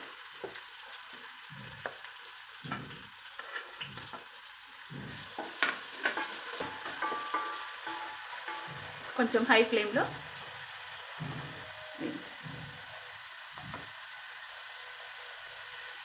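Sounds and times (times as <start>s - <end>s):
onions sizzling in hot oil: 0.0s - 16.0s
spatula scraping a pot: 2.7s - 4.2s, 5.0s - 9.2s.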